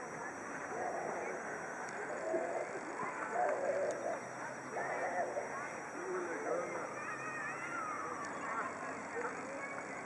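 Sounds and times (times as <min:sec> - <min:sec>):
distant people talking: 0:00.0 - 0:10.0.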